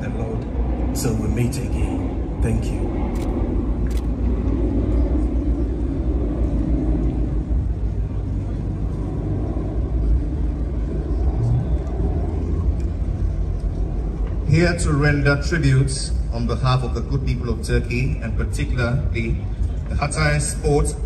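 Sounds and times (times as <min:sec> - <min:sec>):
low crowd rumble: 0:00.0 - 0:21.0.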